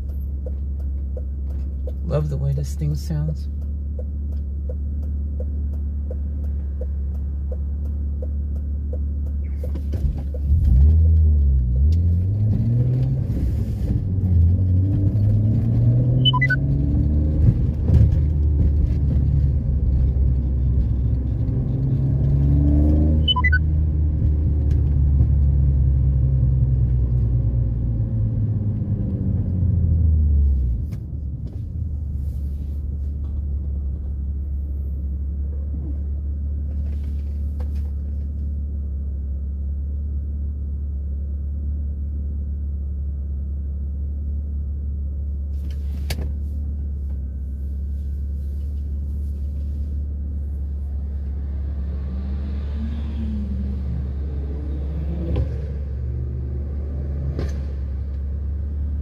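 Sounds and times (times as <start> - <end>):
car engine idling and revving: 0.0 - 59.0.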